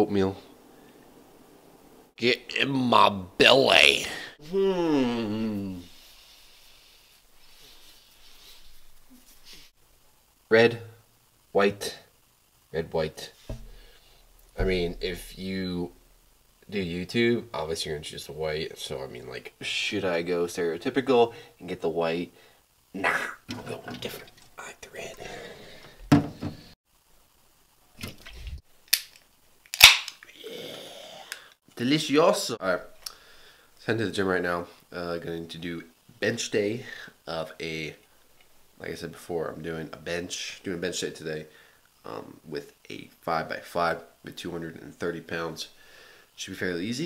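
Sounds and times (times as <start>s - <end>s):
faint steady hiss: 0.0s - 47.0s
can thud: 13.5s - 13.8s
soft breathy noises: 24.8s - 26.8s
can ring-pull pop and hiss: 28.9s - 30.3s.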